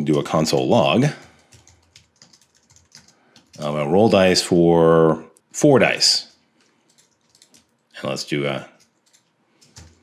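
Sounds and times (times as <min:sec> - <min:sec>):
keyboard typing: 0:00.0 - 0:03.8, 0:06.3 - 0:08.0, 0:08.8 - 0:10.0.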